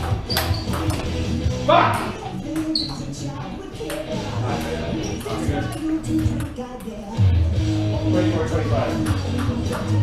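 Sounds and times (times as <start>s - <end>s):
table tennis ball clicks: 0.0s - 1.1s
background music: 0.0s - 10.0s.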